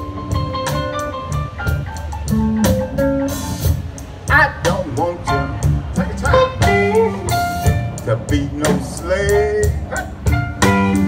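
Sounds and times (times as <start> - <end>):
bass: 0.0 - 11.0
drum kit: 0.0 - 11.0
electric guitar phrases: 0.0 - 11.0.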